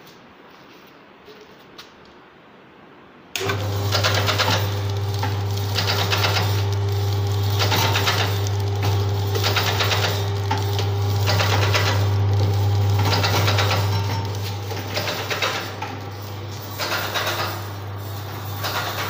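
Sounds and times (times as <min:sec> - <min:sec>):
motor hum: 0:03.4 - 0:19.0
rhythmic mechanical clatter: 0:03.4 - 0:19.0.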